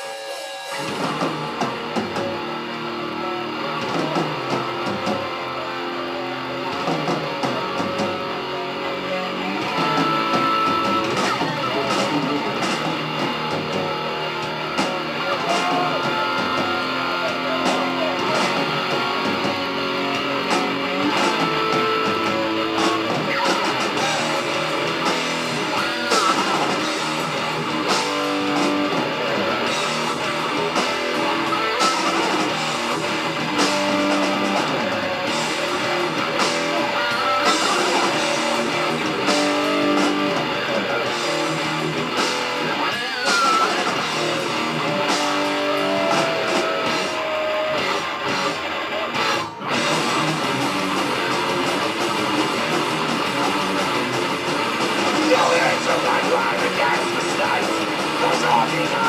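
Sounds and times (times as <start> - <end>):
distorted electric guitar riffs: 0.0 - 59.0
drums: 0.0 - 59.0.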